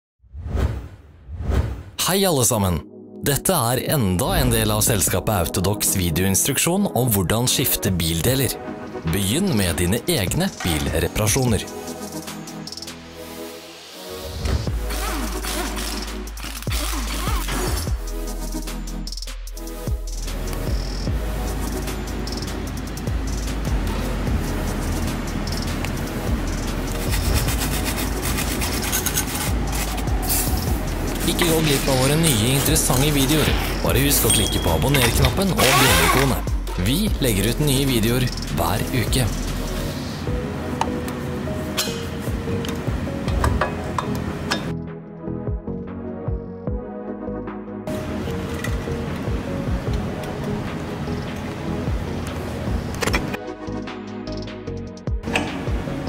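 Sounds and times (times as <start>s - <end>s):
whoosh sound effects: 0.3s - 2.0s
wire brush scrubbing steel: 26.1s - 32.7s, 35.0s - 36.4s.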